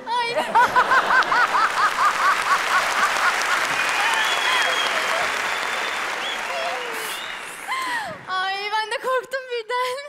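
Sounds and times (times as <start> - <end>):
audience applauding: 0.6 - 8.3.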